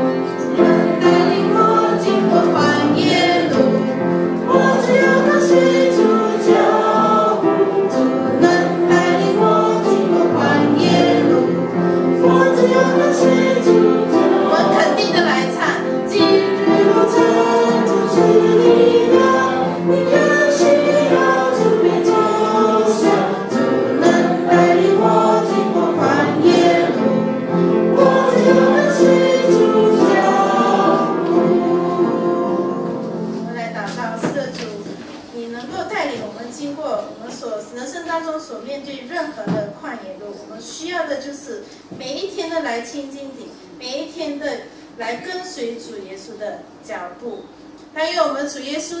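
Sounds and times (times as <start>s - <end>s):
congregation singing a hymn: 0.0s - 35.1s.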